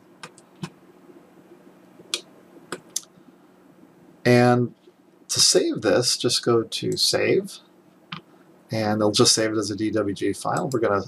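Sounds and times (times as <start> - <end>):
faint low hum: 0.0 - 11.0
computer mouse clicks: 0.2 - 0.8.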